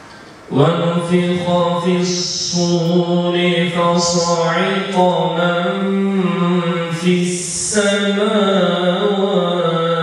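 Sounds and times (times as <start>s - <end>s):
man chanting melodically: 0.5s - 10.0s.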